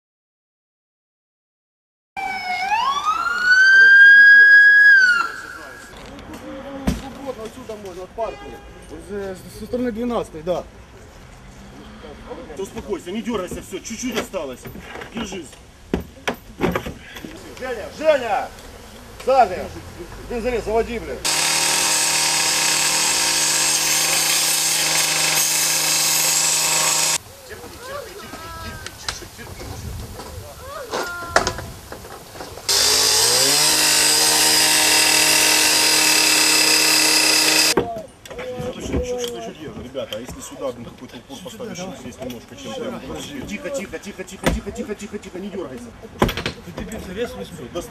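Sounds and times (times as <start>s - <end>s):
siren winding up: 2.2s - 5.9s, 32.7s - 37.8s
angle grinder cutting sheet metal: 21.2s - 27.2s, 32.7s - 37.8s
faint voices: 27.2s - 31.8s.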